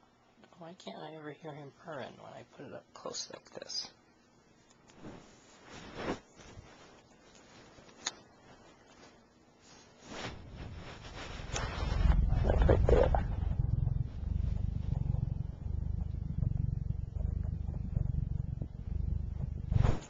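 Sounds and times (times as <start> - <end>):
rubbing and handling noise: 4.6 - 20.0
cat purring: 10.2 - 20.0.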